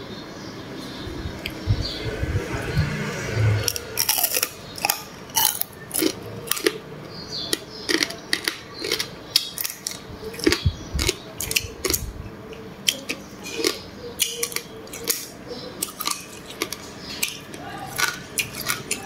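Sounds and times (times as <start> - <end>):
chewing: 3.6 - 6.8, 7.4 - 19.0
crab shells cracking: 3.7 - 6.8, 7.5 - 12.0, 12.8 - 19.0.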